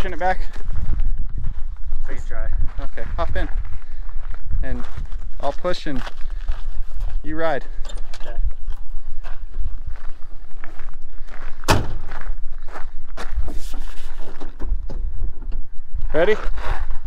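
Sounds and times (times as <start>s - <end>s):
footsteps on gravel: 0.0s - 7.8s, 8.4s - 14.6s
truck door slamming: 11.6s - 12.2s.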